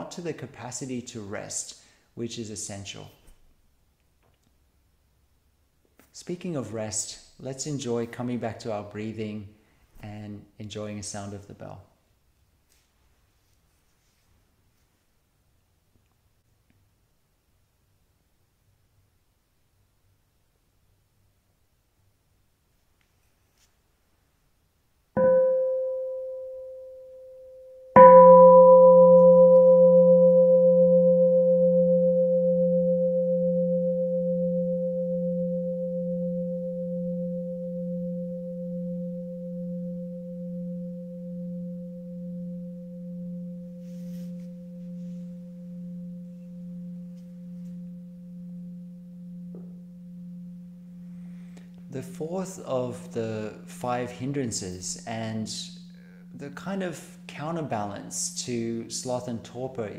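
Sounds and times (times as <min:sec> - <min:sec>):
meditation bell ringing: 0:25.2 - 0:59.9.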